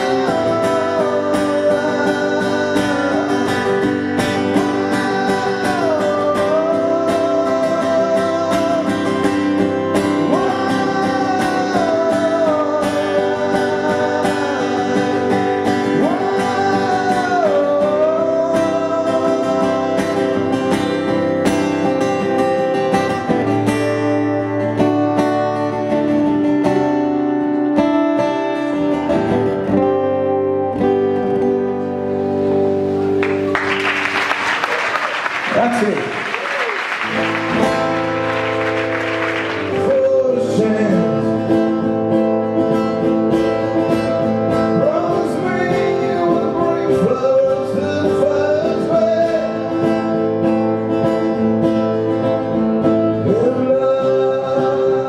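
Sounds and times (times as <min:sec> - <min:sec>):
strummed acoustic guitar: 0:00.0 - 0:36.2, 0:36.8 - 0:55.0
sliding lead melody: 0:37.0 - 0:53.2.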